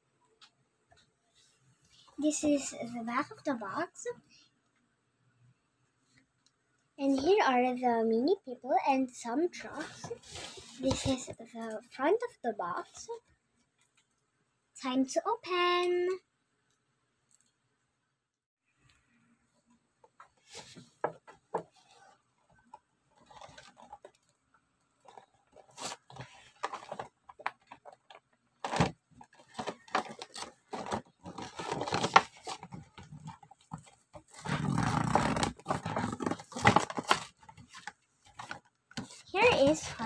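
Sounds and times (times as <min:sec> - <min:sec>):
plastic blister pack crackling: 0:25.0 - 0:38.6
cardboard tearing: 0:28.6 - 0:32.8, 0:34.3 - 0:37.8.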